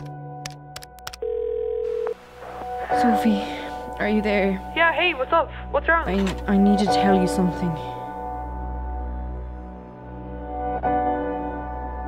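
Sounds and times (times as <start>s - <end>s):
telephone ringback beep: 1.2s - 2.2s.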